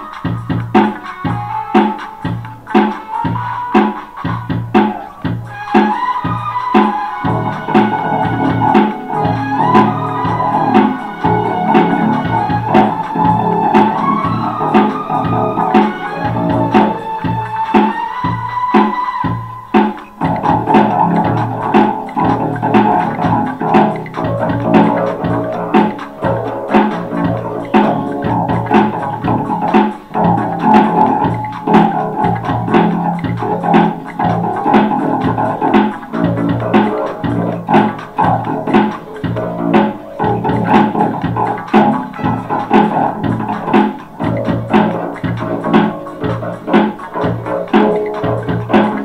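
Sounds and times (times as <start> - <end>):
drum beat: 0.0 - 49.0
electric bass guitar: 7.2 - 18.5, 19.2 - 49.0.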